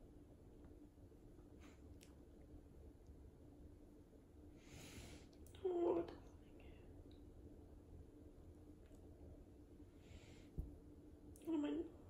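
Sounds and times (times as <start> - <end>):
faint breathy sound: 4.5 - 5.5, 9.9 - 10.8.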